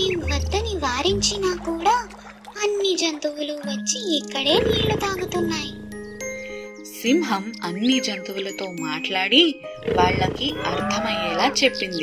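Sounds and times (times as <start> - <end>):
quiet background music: 0.0 - 12.0
long low animal call: 9.8 - 11.6.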